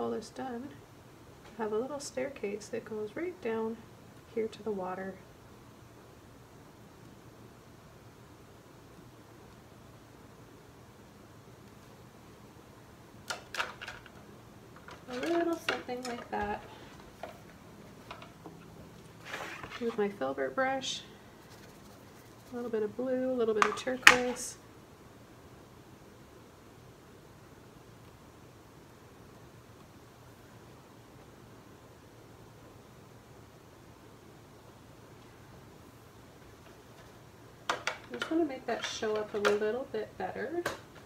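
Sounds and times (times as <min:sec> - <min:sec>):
faint room noise: 0:00.0 - 0:41.0.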